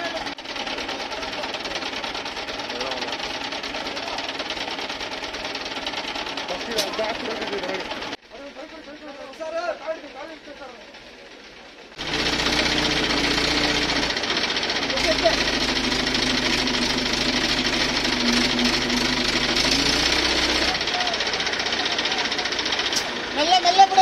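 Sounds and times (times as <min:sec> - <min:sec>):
truck diesel engine running: 0:00.0 - 0:24.0.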